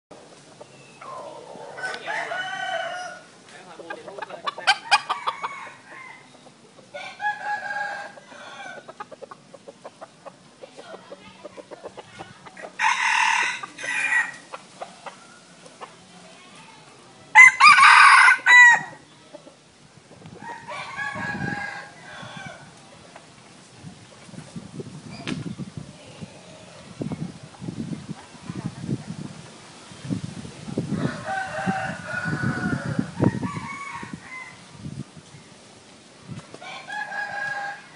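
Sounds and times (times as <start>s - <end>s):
soft calls and clucks: 0.1s - 29.6s
rooster crowing: 1.3s - 3.3s, 4.7s - 6.3s, 7.0s - 8.8s, 12.8s - 14.5s, 17.4s - 19.0s, 20.4s - 22.7s, 30.9s - 34.6s, 36.6s - 37.9s.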